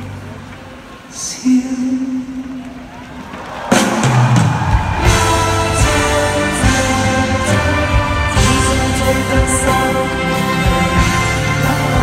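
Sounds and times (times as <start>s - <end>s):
live rock band: 2.1s - 12.0s
loud drum hit: 3.7s - 9.8s
heavy bass notes: 4.9s - 12.0s.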